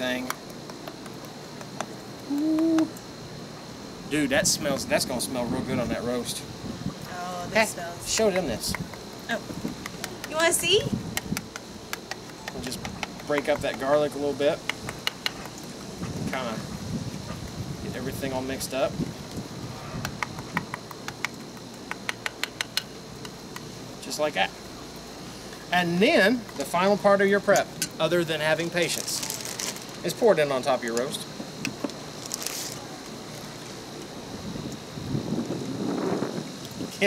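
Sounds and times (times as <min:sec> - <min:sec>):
faint high whine: 0:00.0 - 0:37.0
wind buffeting microphone: 0:04.3 - 0:11.6, 0:14.7 - 0:21.0, 0:34.2 - 0:37.0.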